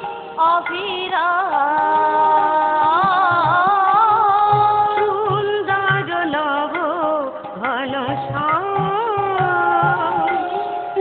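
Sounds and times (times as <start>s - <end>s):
musical accompaniment: 0.0s - 11.0s
woman singing long notes: 0.0s - 11.0s.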